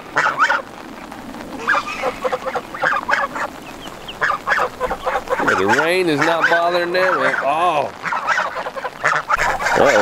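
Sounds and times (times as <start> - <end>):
geese honking: 0.0 - 10.0
chickens clucking: 1.5 - 10.0.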